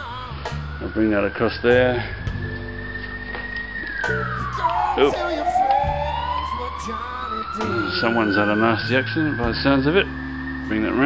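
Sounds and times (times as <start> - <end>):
emergency siren wailing: 0.0 - 11.0
faint music: 0.0 - 11.0.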